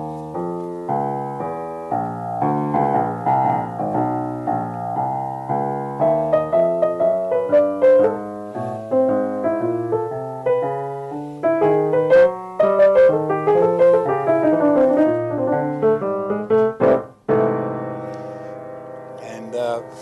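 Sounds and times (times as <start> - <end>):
piano chords and melody: 0.0 - 20.0.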